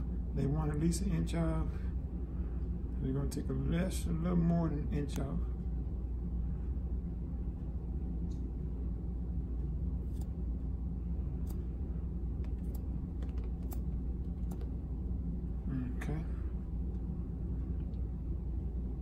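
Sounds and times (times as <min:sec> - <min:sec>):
low hum: 0:00.0 - 0:19.0
shears snipping wet hair: 0:12.4 - 0:14.7.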